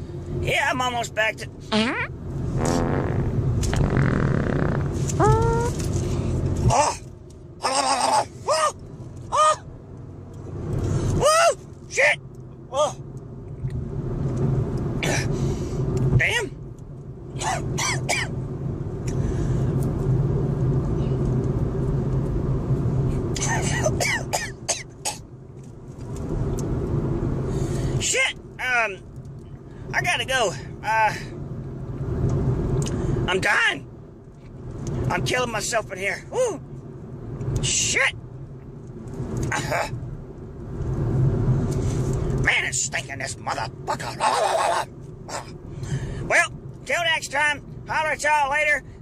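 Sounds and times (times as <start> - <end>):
car cabin road noise: 0.0 - 49.0
fart: 1.7 - 5.0.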